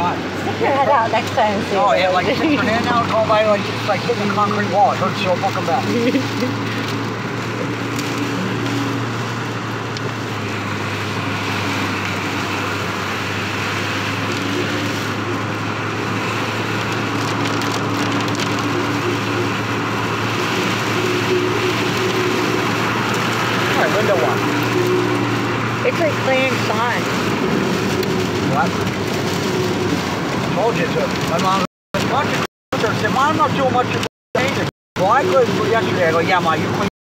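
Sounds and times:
engine and road hum: 0:00.0 - 0:36.9
rain on car: 0:00.0 - 0:36.9
tyres hissing on wet pavement: 0:00.0 - 0:36.9.

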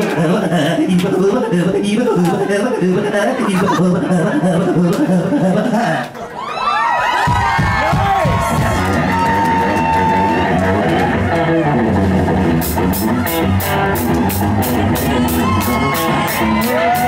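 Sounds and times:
steady bass line: 0:07.3 - 0:17.0
electric guitar lead line: 0:08.5 - 0:17.0.

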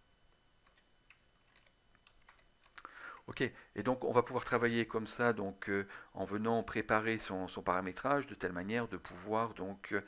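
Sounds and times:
typing on computer keyboard: 0:00.6 - 0:02.8.

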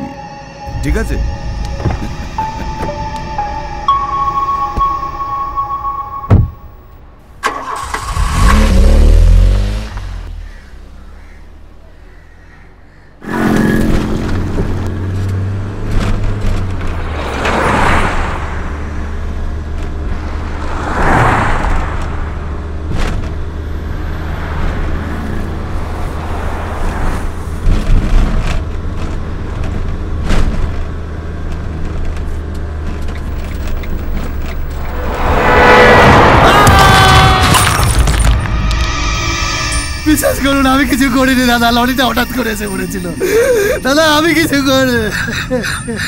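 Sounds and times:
loud rising held tones: 0:00.0 - 0:07.2, 0:34.4 - 0:41.5
car engine and road hum: 0:00.6 - 0:46.0
vehicles whooshing past: 0:13.2 - 0:28.9, 0:33.8 - 0:42.6.

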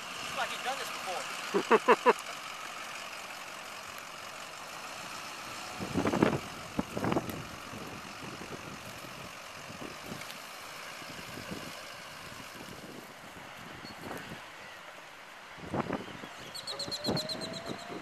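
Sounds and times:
golf cart driving on sand: 0:00.0 - 0:18.0.

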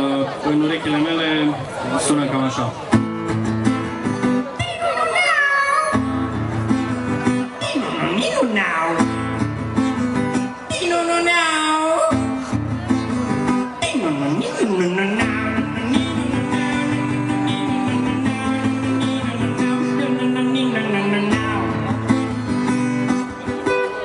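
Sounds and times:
acoustic guitar strummed: 0:02.9 - 0:24.0.

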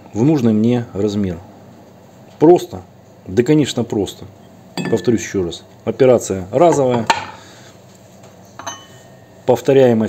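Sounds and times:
steel plate clinking: 0:04.8 - 0:05.4.

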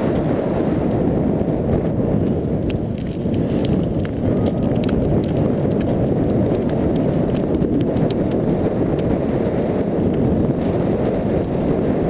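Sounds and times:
wind and wheels rumbling on sand: 0:00.0 - 0:12.0.

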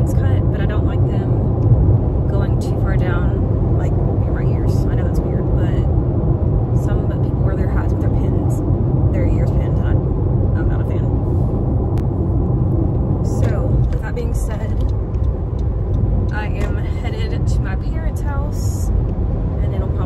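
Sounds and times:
car cabin road rumble: 0:00.0 - 0:20.0.

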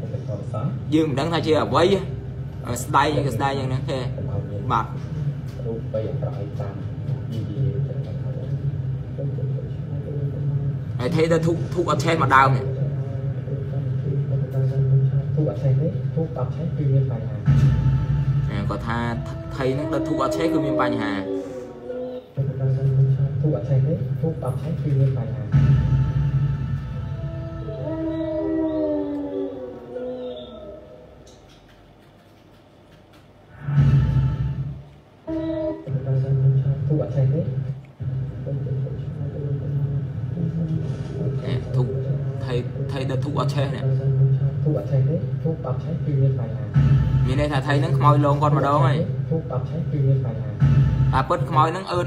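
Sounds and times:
long howling tones: 0:17.8 - 0:22.6, 0:25.8 - 0:31.3.

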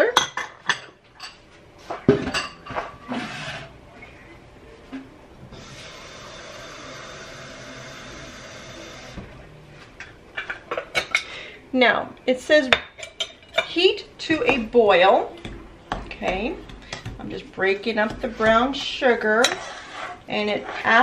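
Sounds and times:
utensils and dishware clinking: 0:12.8 - 0:13.8.

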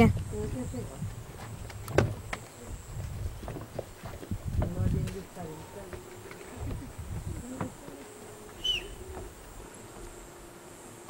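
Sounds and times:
low rumbling noise: 0:00.0 - 0:10.6
flying insect buzzing: 0:00.0 - 0:11.0.

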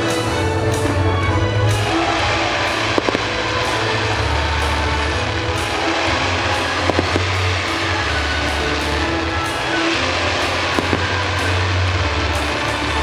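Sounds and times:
loud soundtrack music: 0:00.0 - 0:13.0
firework pops: 0:01.8 - 0:13.0.

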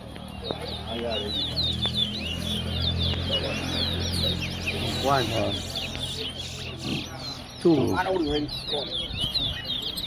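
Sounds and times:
finches singing whistled phrases: 0:00.3 - 0:10.0.

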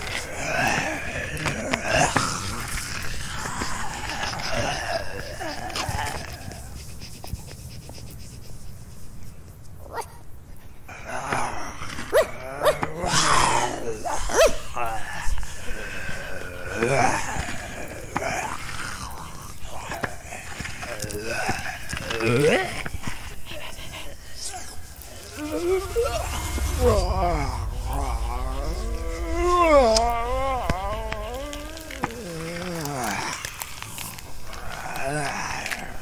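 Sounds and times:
animated dog breathing: 0:22.6 - 0:33.0
dog panting: 0:23.0 - 0:26.8
rising whine: 0:25.0 - 0:33.0
low steady rumble: 0:25.1 - 0:32.9.

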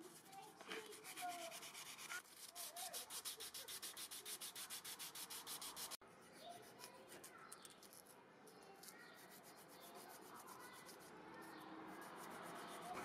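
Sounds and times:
sandpaper rubbing on metal: 0:00.0 - 0:06.0, 0:08.8 - 0:13.0.

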